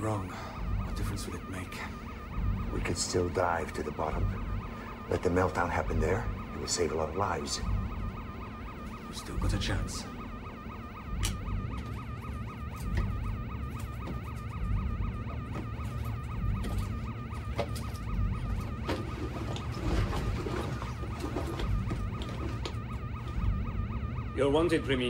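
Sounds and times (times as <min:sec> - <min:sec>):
low rumble: 0:00.0 - 0:25.0
warbling electronic alarm: 0:00.0 - 0:25.0.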